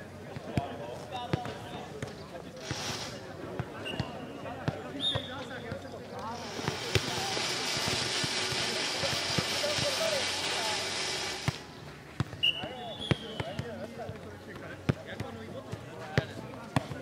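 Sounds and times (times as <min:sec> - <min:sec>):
distant voices: 0:00.4 - 0:14.8
steady hiss: 0:02.6 - 0:03.3, 0:06.2 - 0:11.8.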